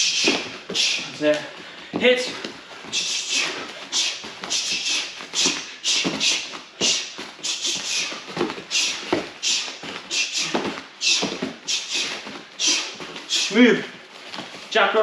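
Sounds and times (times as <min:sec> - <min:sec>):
sharp hissing exhalations: 0:00.0 - 0:01.1, 0:02.9 - 0:13.6
bare feet thudding on mats: 0:00.0 - 0:14.8.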